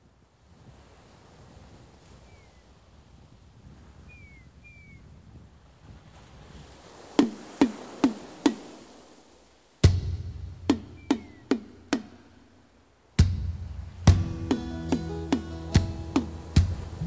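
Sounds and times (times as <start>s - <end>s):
low rushing wash: 6.7s - 17.0s
sharp drum hits with ringing pitch: 9.8s - 12.2s, 13.2s - 17.0s
falling bird chirps: 10.7s - 11.9s.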